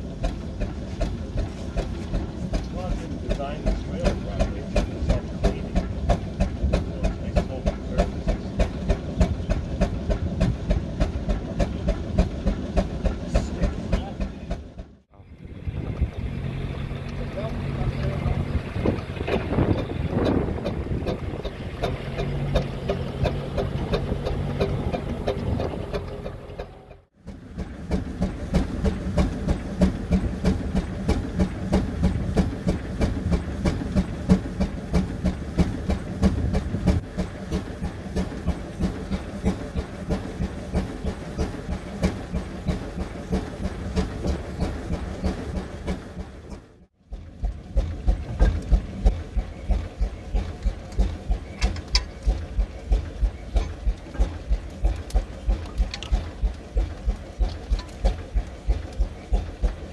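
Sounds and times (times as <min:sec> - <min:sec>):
steam engine running: 0:00.0 - 0:59.9.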